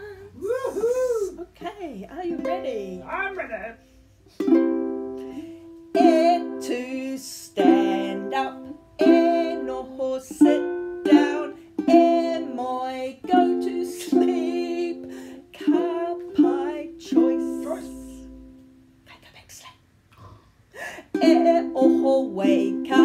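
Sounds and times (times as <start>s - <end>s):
ukulele strumming: 2.1s - 18.9s, 21.1s - 23.0s
woman singing: 5.9s - 18.4s, 21.0s - 23.0s.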